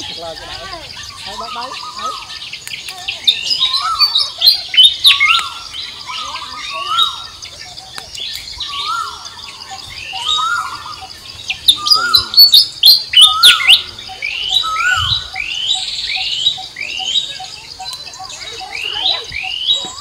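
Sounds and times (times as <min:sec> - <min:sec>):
songbirds chirping: 0:00.0 - 0:20.0.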